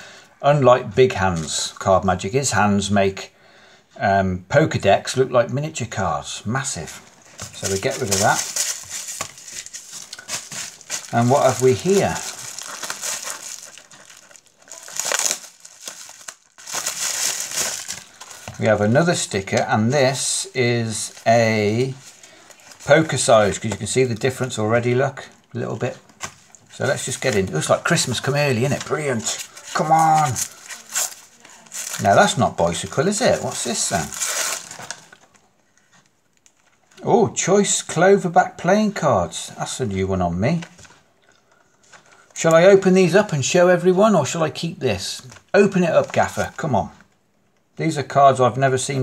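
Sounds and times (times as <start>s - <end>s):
bubble wrap crinkling: 6.7s - 35.6s, 45.2s - 47.1s.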